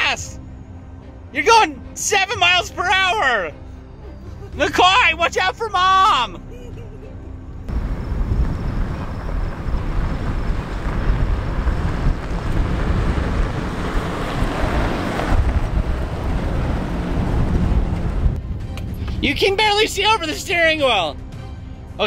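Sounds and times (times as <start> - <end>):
pickup truck rolling on gravel: 7.7 - 18.4
wind buffeting microphone: 7.7 - 19.2.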